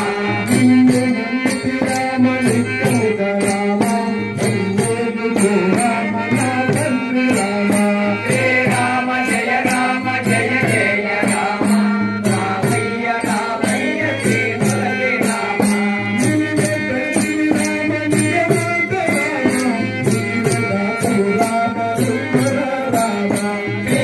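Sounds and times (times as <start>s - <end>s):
hand cymbals struck: 0.0s - 24.0s
men singing in unison: 0.0s - 24.0s.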